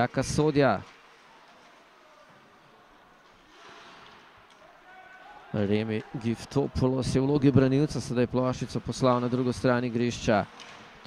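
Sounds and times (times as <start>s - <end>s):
skate blades scraping ice: 3.3s - 4.4s.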